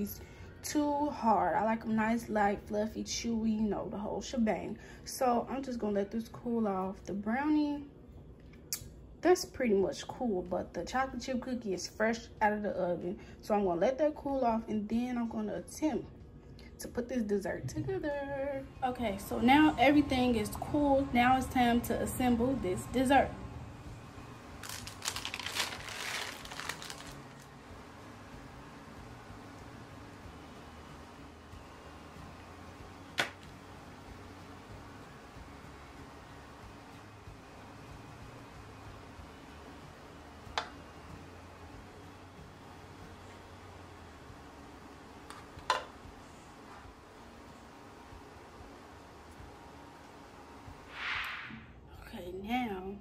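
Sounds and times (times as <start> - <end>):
plastic wrap crinkling: 24.6 - 27.6.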